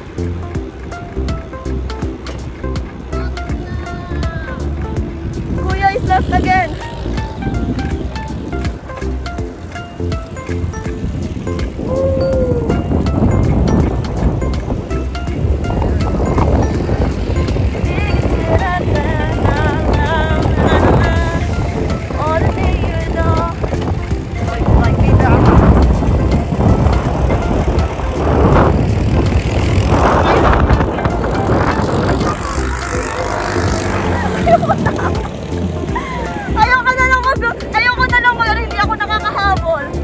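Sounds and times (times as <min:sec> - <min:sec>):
music: 0:00.0 - 0:40.0
wind buffeting microphone: 0:00.0 - 0:40.0
voices: 0:02.4 - 0:08.8, 0:15.6 - 0:40.0.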